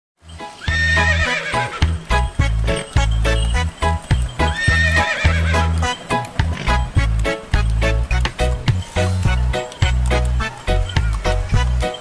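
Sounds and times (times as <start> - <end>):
horse whinny: 0.6 - 2.0, 4.4 - 5.9.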